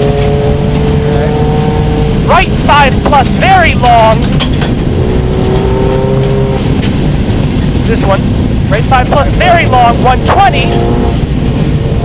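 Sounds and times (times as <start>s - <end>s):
car engine running hard: 0.0s - 12.0s
tyres on gravel road: 0.0s - 12.0s.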